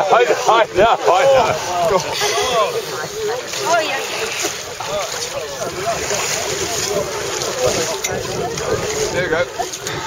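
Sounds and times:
chatter of voices: 0:00.0 - 0:10.0
water sloshing: 0:00.0 - 0:10.0
wind on microphone: 0:00.5 - 0:10.0.

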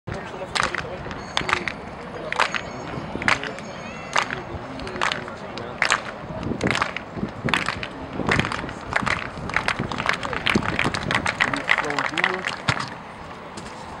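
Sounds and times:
voices calling: 0:00.1 - 0:14.0
crowd clapping in rhythm: 0:00.5 - 0:12.9.

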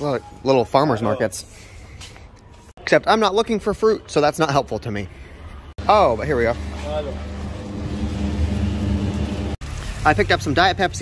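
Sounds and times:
low machine hum: 0:05.8 - 0:09.6.

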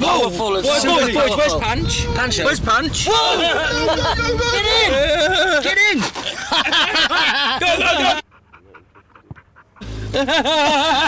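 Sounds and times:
group laughter and shouting: 0:03.0 - 0:11.0
breathy panting laughter: 0:05.0 - 0:11.0.

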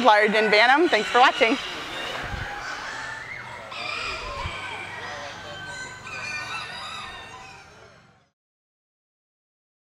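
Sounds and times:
chickens crowing and clucking: 0:00.0 - 0:08.3.

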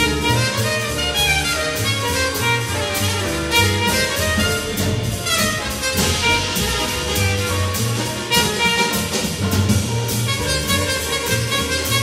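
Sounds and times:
double bass: 0:00.0 - 0:12.0
drum kit with cymbal strokes: 0:00.0 - 0:12.0
piano: 0:00.0 - 0:12.0
trumpet: 0:00.0 - 0:12.0.

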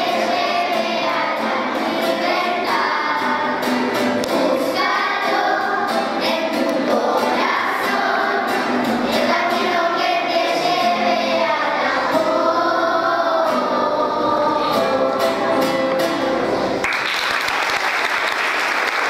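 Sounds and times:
children's choir singing: 0:00.0 - 0:16.8
strummed acoustic guitar: 0:00.0 - 0:16.8.

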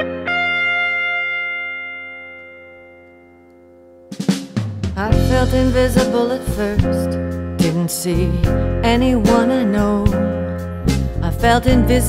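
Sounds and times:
guitar chord ringing: 0:00.0 - 0:04.4.

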